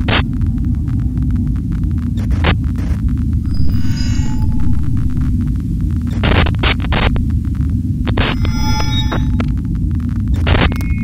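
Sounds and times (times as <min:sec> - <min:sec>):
buzzing electronic tone: 0:00.0 - 0:11.0
deep throbbing bass drone: 0:00.0 - 0:11.0
short bursts of static: 0:01.5 - 0:11.0.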